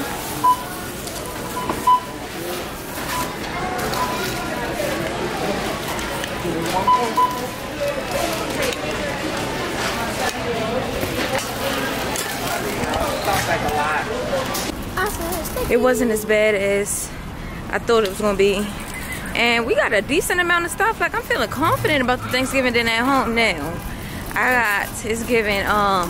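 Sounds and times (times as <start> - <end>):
indistinct chatter of voices: 0.0 - 26.0
short beeps: 0.4 - 0.8, 1.4 - 2.2, 6.8 - 7.6.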